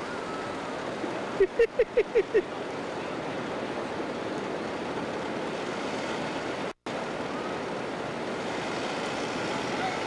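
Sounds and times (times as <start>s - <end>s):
person laughing: 1.4s - 2.5s.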